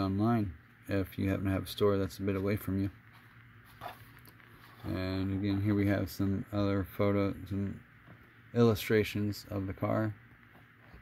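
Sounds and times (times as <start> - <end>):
man talking: 0.0 - 3.0, 4.8 - 7.9, 8.5 - 10.2.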